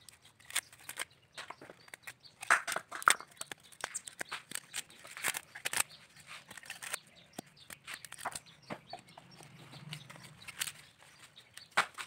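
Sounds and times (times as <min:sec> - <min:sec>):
coconut husk fibres tearing: 0:00.0 - 0:08.5.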